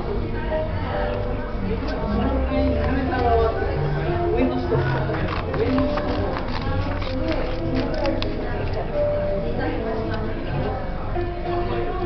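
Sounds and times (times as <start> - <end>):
music: 0.0 - 12.0
paper rustling: 4.8 - 8.8.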